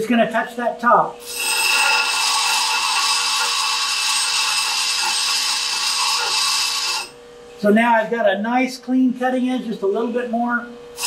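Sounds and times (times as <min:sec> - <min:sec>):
bench grinder grinding steel: 0:01.2 - 0:07.2.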